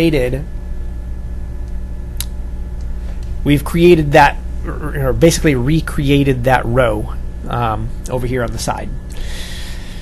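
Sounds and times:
steady low hum: 0:00.0 - 0:10.0
sharp click: 0:01.6 - 0:03.3.

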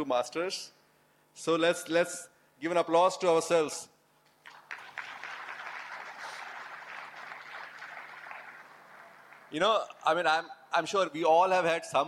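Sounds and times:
audience clapping: 0:04.4 - 0:10.0.

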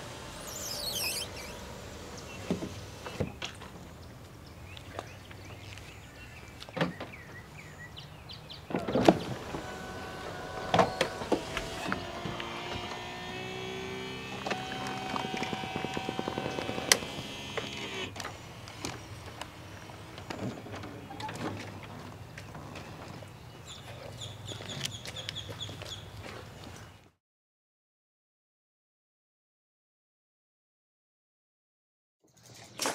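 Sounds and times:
electric motor whining: 0:00.0 - 0:03.2, 0:08.8 - 0:20.3.

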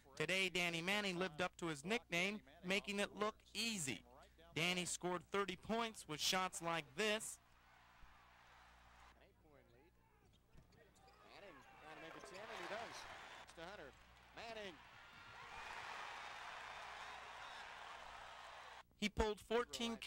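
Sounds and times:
crowd cheering: 0:07.5 - 0:09.2, 0:11.1 - 0:18.8.

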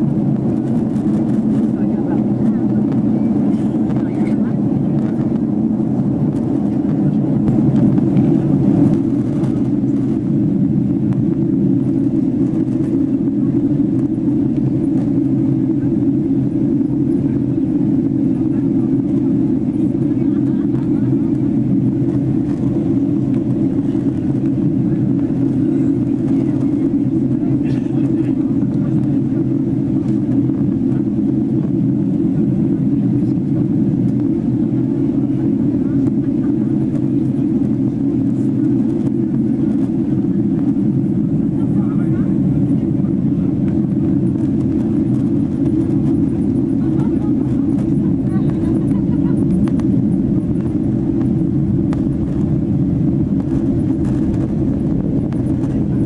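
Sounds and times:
jet engine drone: 0:00.0 - 0:56.0.

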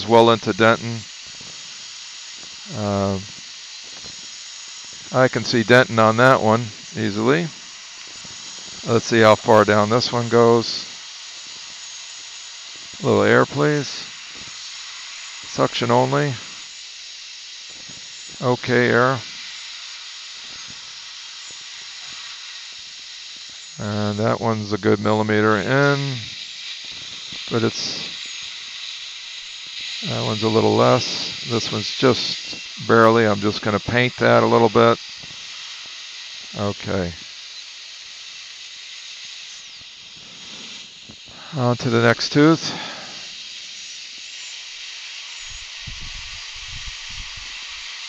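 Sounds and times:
compressed air hissing: 0:00.0 - 0:48.0
dental suction running: 0:00.0 - 0:48.0.

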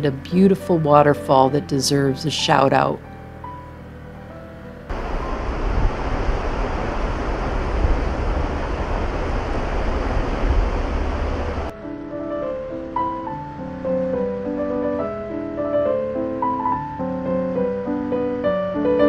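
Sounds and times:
waterfall rushing: 0:04.9 - 0:11.7
wind buffeting microphone: 0:04.9 - 0:11.7.

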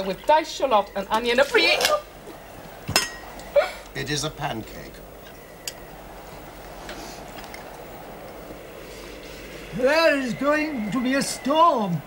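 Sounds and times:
soundtrack hiss: 0:00.0 - 0:12.0.

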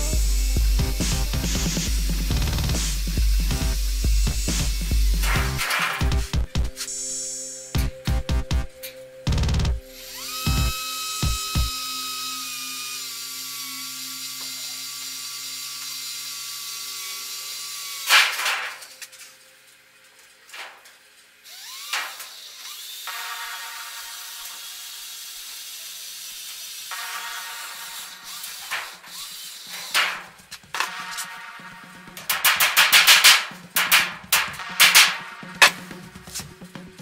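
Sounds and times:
cordless drill whining on metal: 0:00.0 - 0:06.2, 0:09.8 - 0:19.2, 0:21.4 - 0:30.9.

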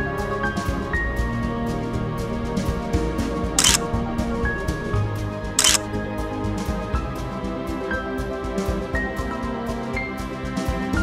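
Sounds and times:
background music: 0:00.0 - 0:11.0
camera shutter clicks: 0:03.6 - 0:03.8, 0:05.6 - 0:05.8.

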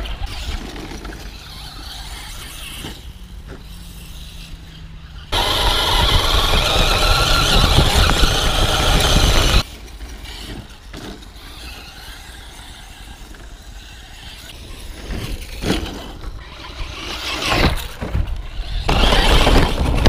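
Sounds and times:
outdoor background: 0:00.0 - 0:20.0
tyres on dirt: 0:00.0 - 0:20.0
electric motor whining: 0:05.3 - 0:09.7.

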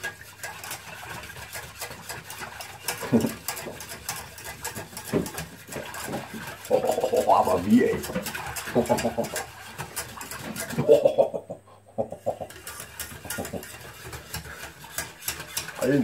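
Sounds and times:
man laughing: 0:06.7 - 0:07.9, 0:08.6 - 0:09.4, 0:10.7 - 0:12.6, 0:13.2 - 0:13.6.

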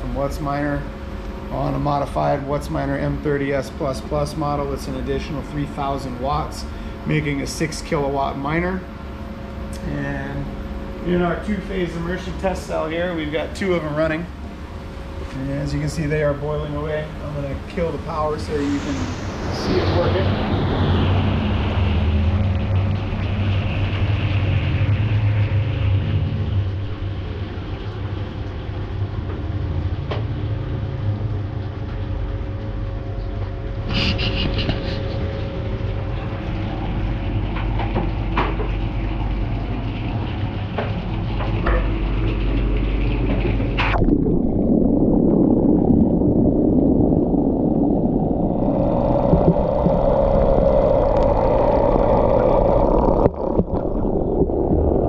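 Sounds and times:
coolant boiling: 0:00.0 - 0:55.0
dull rumbling noise: 0:00.0 - 0:55.0
steady low hum: 0:00.0 - 0:55.0.

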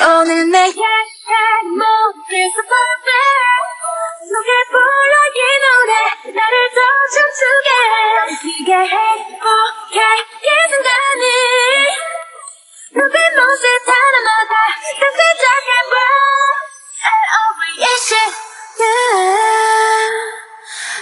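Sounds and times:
woman singing a cappella: 0:00.0 - 0:21.0.

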